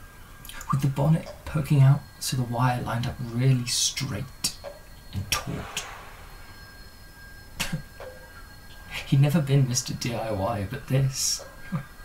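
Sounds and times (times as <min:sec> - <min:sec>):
faint high-pitched tones: 0:00.0 - 0:12.0.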